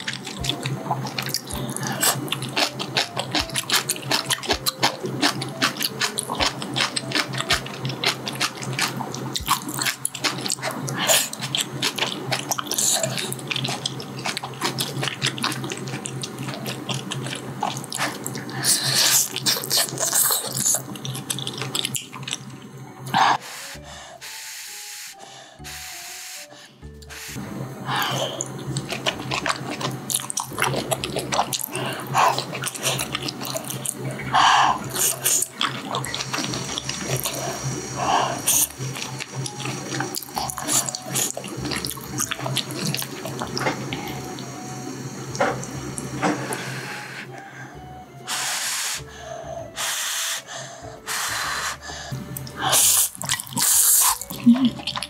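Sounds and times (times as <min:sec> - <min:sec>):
slurping noodles: 0:01.0 - 0:22.4, 0:27.1 - 0:44.4, 0:48.3 - 0:55.0.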